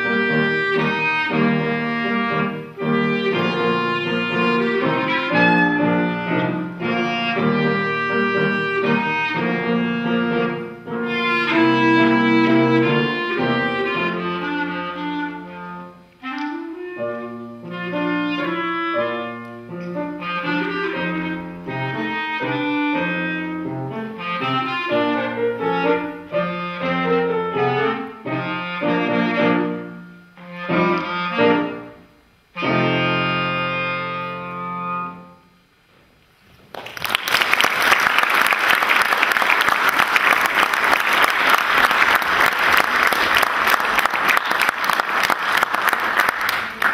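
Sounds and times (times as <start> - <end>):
piano accompaniment: 0.0 - 35.7
clarinet playing tango: 0.0 - 35.8
audience applause: 36.6 - 46.9.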